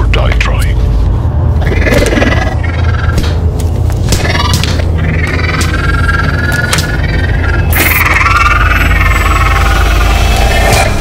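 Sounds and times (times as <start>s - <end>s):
wavering mid-pitched drone: 4.2s - 11.0s.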